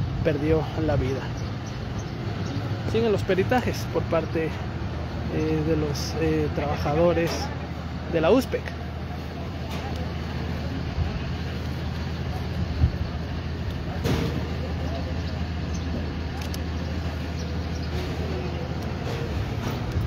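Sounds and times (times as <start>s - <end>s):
vehicle engine idling: 0.0s - 20.0s.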